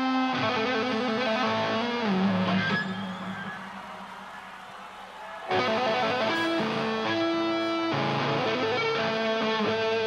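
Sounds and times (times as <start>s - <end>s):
faint hall background noise: 0.8s - 10.0s.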